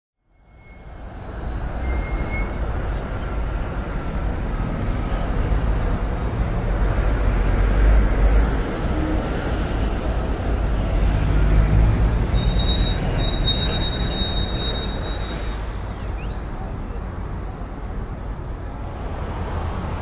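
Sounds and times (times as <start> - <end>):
city traffic rumble: 0.2 - 20.0.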